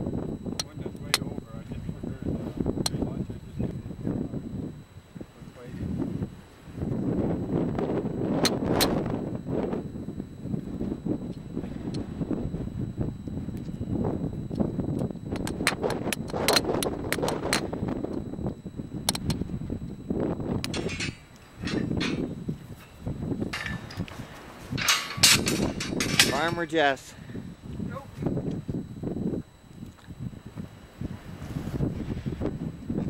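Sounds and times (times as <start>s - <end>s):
wind buffeting microphone: 0.0s - 33.0s
sharp clicks and knocks: 14.5s - 17.7s.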